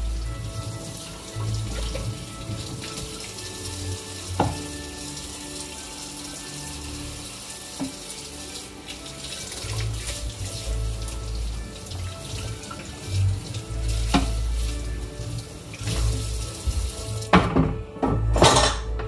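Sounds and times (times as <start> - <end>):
tap water running into sink: 0.0 - 18.6
cutting board knocking on sink: 4.4 - 4.7.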